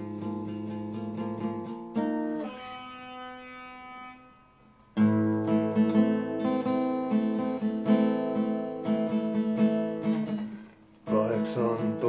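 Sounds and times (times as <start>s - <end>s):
acoustic guitar chord ringing: 0.0s - 12.0s
acoustic guitar strum: 0.0s - 12.0s.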